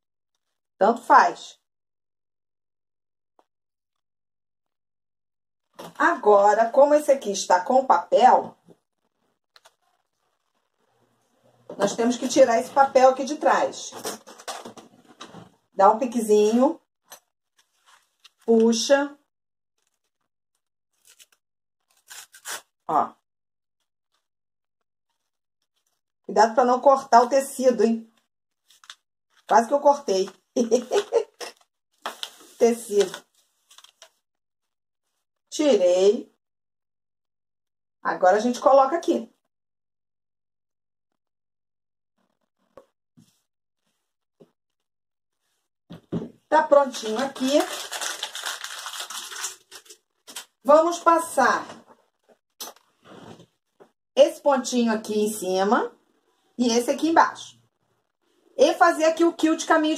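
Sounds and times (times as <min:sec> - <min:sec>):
faint paper crinkles: 0:09.0 - 0:11.4, 0:17.0 - 0:18.6, 0:20.9 - 0:22.7, 0:28.5 - 0:34.2, 0:46.9 - 0:50.6.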